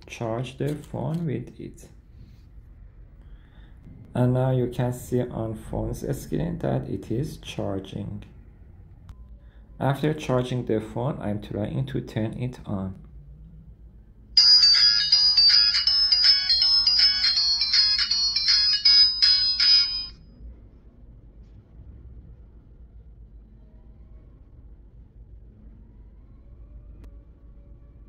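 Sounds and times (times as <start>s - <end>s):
smartwatch start-up jingle: 14.4s - 20.1s.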